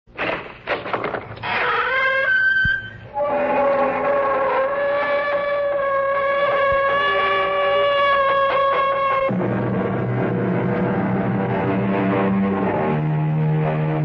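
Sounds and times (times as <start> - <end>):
grating door creak: 0.1 - 9.3.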